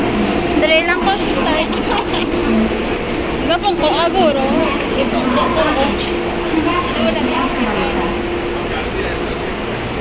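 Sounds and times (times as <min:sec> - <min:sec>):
indistinct chatter of passengers: 0:00.0 - 0:10.0
steady low hum: 0:00.0 - 0:10.0.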